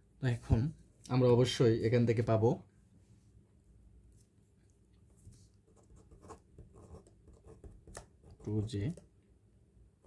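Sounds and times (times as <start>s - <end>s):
pen scratching on paper: 5.7s - 8.6s.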